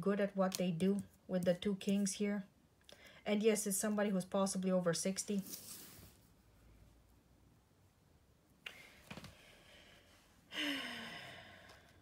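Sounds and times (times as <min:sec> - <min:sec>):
person sighing: 0:10.5 - 0:11.9.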